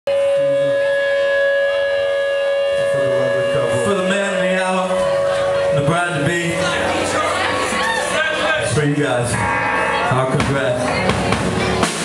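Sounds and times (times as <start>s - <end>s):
amplified sustained guitar note: 0.1s - 11.8s
short low notes: 0.1s - 11.9s
voices: 1.8s - 11.8s.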